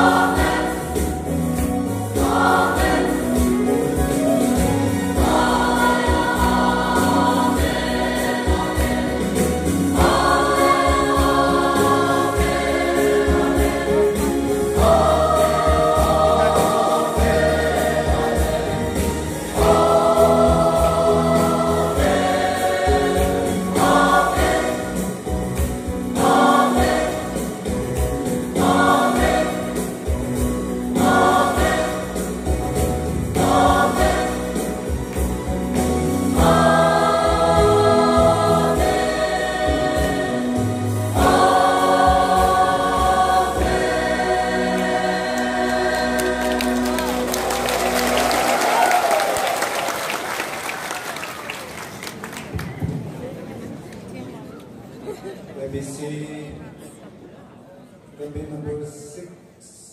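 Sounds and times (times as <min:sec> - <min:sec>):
mixed choir singing in harmony: 0:00.0 - 0:52.0.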